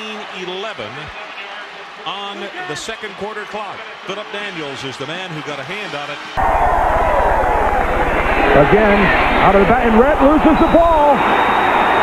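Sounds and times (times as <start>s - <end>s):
stadium crowd noise: 0.0s - 12.0s
steady low hum: 6.4s - 10.8s.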